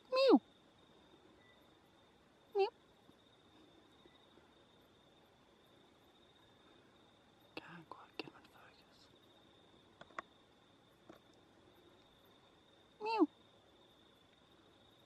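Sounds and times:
faint steady high tone: 0:00.0 - 0:04.9
soft whispering: 0:07.5 - 0:09.4.

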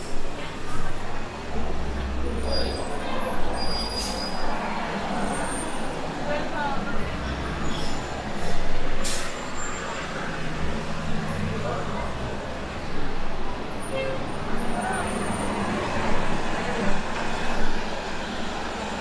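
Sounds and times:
chatter of passers-by: 0:00.0 - 0:19.0
heavy vehicle engine rumble: 0:00.0 - 0:19.0
traffic running past: 0:00.0 - 0:19.0.

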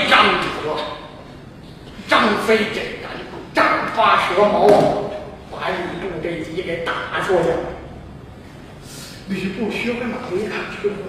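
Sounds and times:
man speaking loudly: 0:00.0 - 0:01.2, 0:02.0 - 0:07.9, 0:09.2 - 0:11.0.

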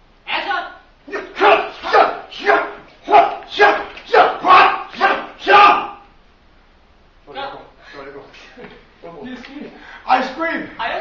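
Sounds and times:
fighting shouts: 0:00.3 - 0:06.2.

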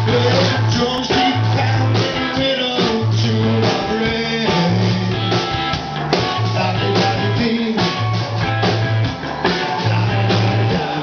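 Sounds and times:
bass line of held notes: 0:00.0 - 0:11.0
live rock band playing: 0:00.0 - 0:11.0.

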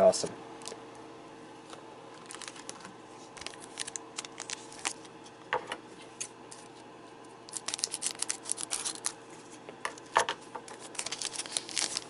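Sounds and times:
foil wrapper crinkling: 0:01.7 - 0:05.2, 0:07.5 - 0:09.2, 0:10.6 - 0:12.0
scissors cutting foil: 0:07.5 - 0:09.2, 0:10.7 - 0:12.0.

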